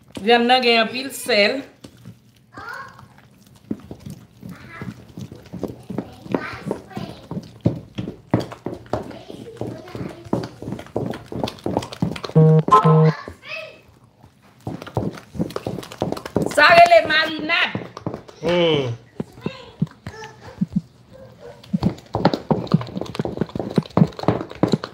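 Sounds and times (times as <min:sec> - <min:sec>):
wooden spoon beating batter in bowl: 0:00.0 - 0:13.0, 0:14.3 - 0:18.4, 0:19.0 - 0:24.9
short beeps: 0:12.4 - 0:13.1.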